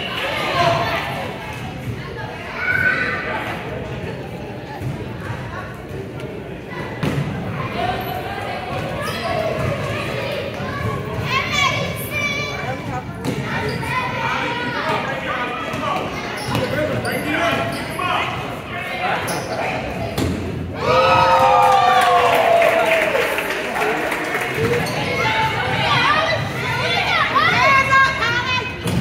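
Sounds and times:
children and adults shouting: 0:20.7 - 0:23.3, 0:25.0 - 0:28.8.

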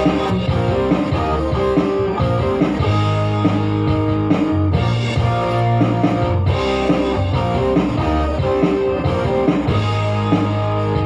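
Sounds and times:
drums: 0:00.0 - 0:11.0
keyboard chords: 0:00.0 - 0:11.0
low bass notes: 0:00.0 - 0:11.0.

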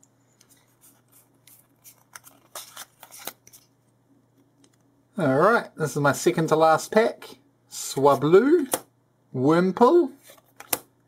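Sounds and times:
trading cards scraping: 0:00.4 - 0:03.7.

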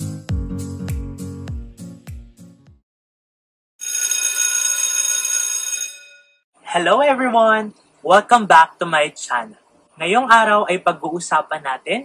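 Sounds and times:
electric school bell ringing: 0:03.8 - 0:06.4.

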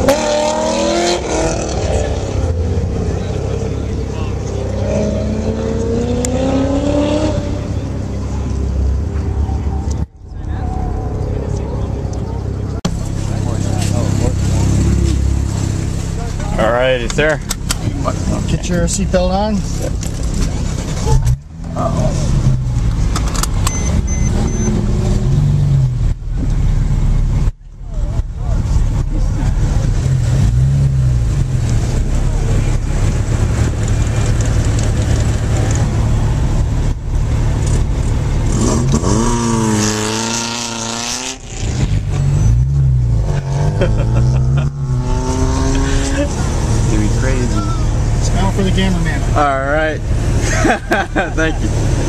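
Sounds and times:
car engine revving: 0:00.0 - 0:52.0.

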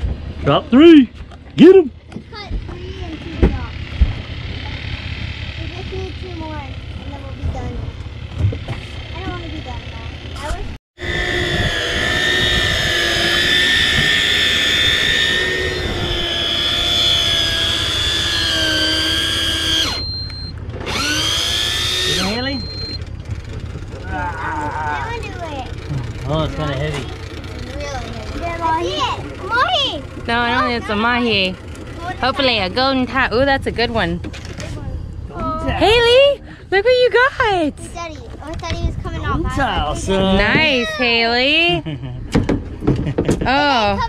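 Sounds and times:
boat noise: 0:00.0 - 0:44.0
wind: 0:00.0 - 0:44.0
electric fishing reel motor whining: 0:11.0 - 0:23.0.

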